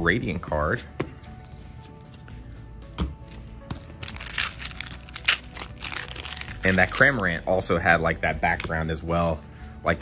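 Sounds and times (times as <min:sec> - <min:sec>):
quiet background music: 0:00.0 - 0:10.0
foil wrapper crinkling: 0:03.9 - 0:07.3.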